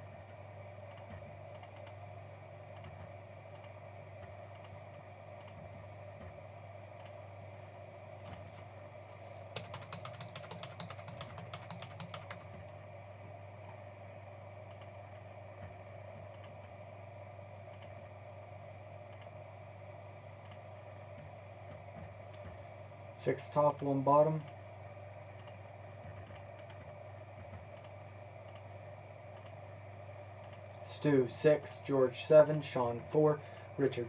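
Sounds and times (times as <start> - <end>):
steady low hum: 0.0 - 34.0
computer mouse clicks: 0.9 - 2.0, 2.7 - 4.8, 5.4 - 6.3, 7.0 - 7.2, 9.5 - 12.8, 14.7 - 14.9, 15.6 - 16.8, 17.7 - 18.0, 19.1 - 19.4, 20.4 - 20.6, 25.3 - 28.7, 29.3 - 29.6, 30.4 - 30.8
typing on computer keyboard: 9.5 - 12.8.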